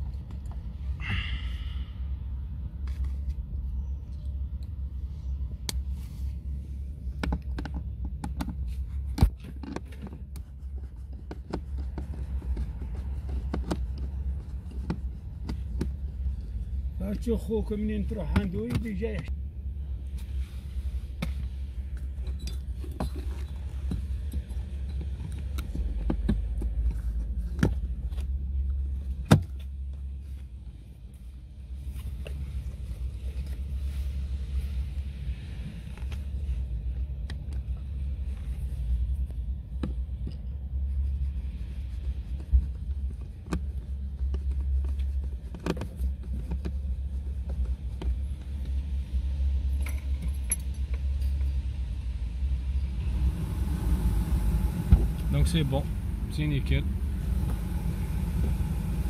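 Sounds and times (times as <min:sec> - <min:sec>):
car engine idling: 0:43.4 - 0:59.0.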